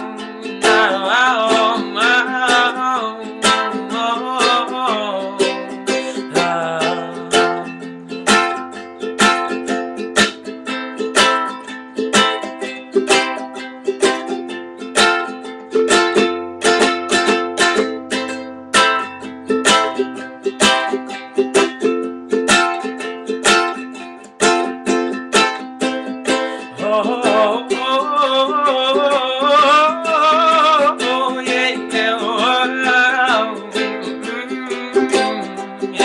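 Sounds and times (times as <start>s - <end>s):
ukulele strumming chords: 0.0s - 36.0s.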